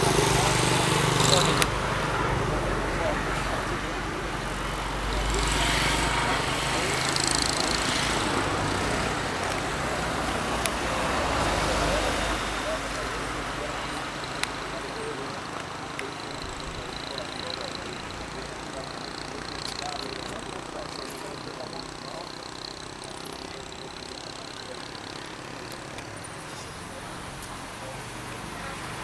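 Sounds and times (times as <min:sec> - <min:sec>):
people talking: 0:00.0 - 0:29.0
vehicle engine running: 0:00.0 - 0:29.0.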